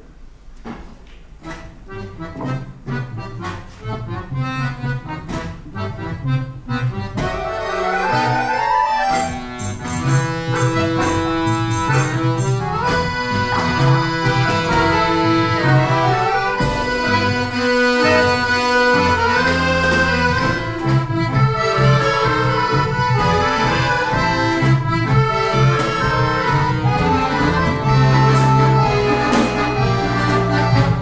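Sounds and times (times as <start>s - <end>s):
accordion orchestra playing: 1.4s - 31.0s.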